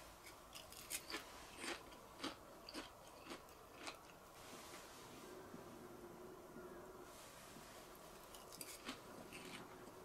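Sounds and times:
crunchy food being chewed: 0:00.5 - 0:04.2, 0:08.2 - 0:10.0.

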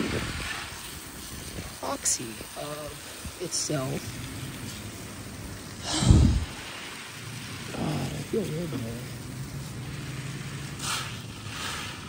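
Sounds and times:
hose nozzle spraying water: 0:00.0 - 0:12.0.

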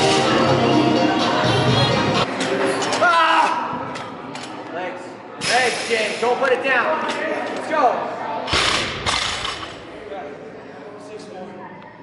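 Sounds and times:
background music: 0:00.0 - 0:02.3
people shouting in echoing hall: 0:03.0 - 0:03.8.

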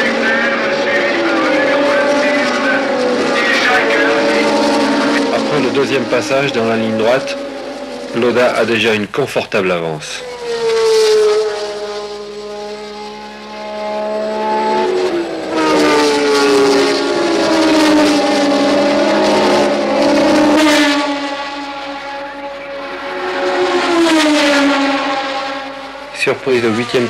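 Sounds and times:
racing cars passing: 0:00.0 - 0:27.0.

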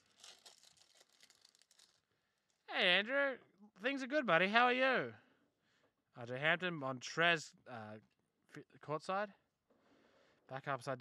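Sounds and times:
cards and plastic crinkling: 0:00.0 - 0:02.1.

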